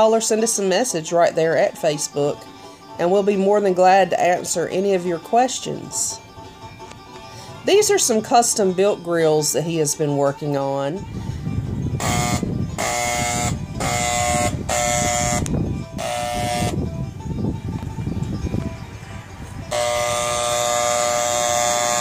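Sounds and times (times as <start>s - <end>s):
electric paint sprayer buzzing: 12.0s - 16.8s, 19.7s - 22.0s.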